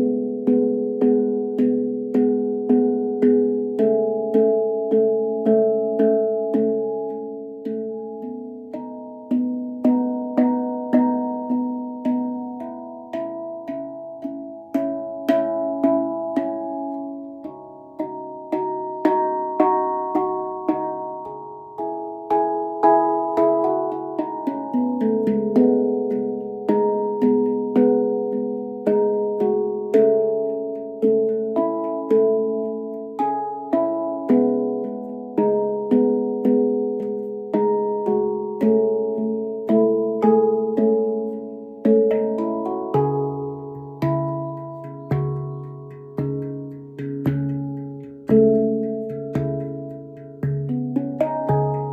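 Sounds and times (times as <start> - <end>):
handpan notes played by hand: 0.0 - 51.9.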